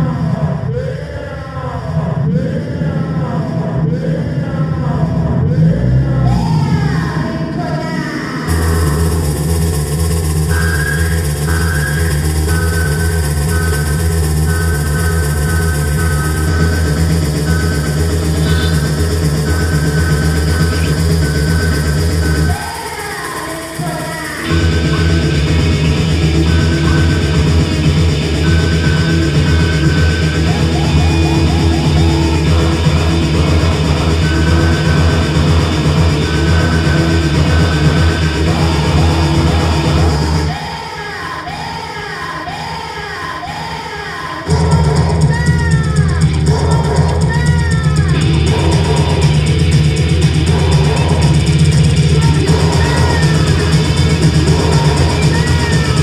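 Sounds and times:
keyboard: 0:00.0 - 0:56.0
electric guitar: 0:01.8 - 0:40.8, 0:44.4 - 0:56.0
electro-punk band playing loud: 0:02.0 - 0:42.8, 0:44.4 - 0:56.0
bass-heavy beat: 0:08.4 - 0:40.7, 0:44.5 - 0:56.0
repeating high riff: 0:08.5 - 0:40.7.

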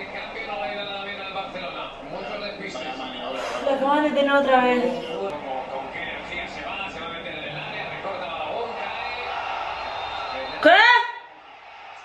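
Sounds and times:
male commentator talking: 0:04.9 - 0:09.4.

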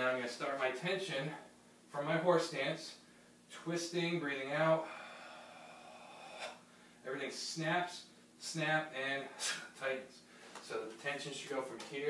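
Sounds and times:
man breathing out slowly: 0:04.8 - 0:07.0
short sharp breath: 0:04.8 - 0:07.0.

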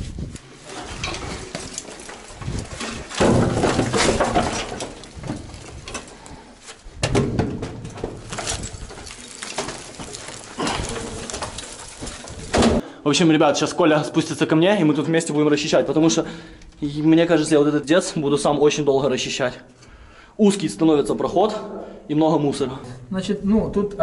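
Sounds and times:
wooden planks scraping and clattering: 0:00.0 - 0:12.8.

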